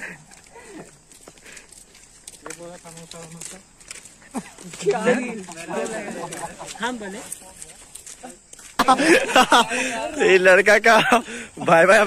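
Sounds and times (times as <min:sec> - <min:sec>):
footsteps on paved path: 0:00.0 - 0:12.0.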